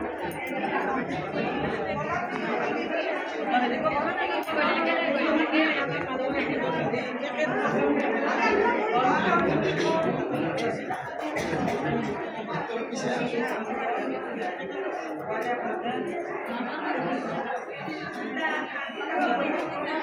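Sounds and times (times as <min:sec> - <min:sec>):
people chattering: 0:00.0 - 0:20.0.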